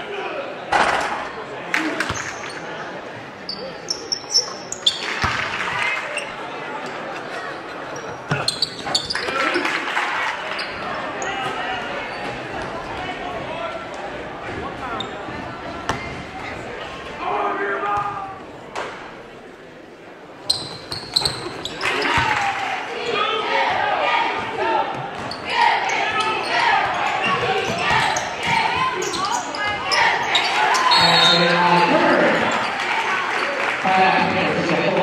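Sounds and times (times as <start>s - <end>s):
murmur of crowd voices: 0.0s - 35.0s
sneakers squeaking on hardwood: 3.5s - 5.5s, 8.0s - 9.5s, 20.4s - 22.4s, 24.9s - 31.7s.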